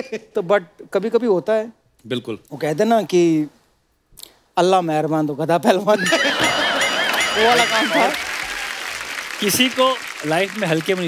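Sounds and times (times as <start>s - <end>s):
audience laughing and clapping: 6.0s - 11.0s.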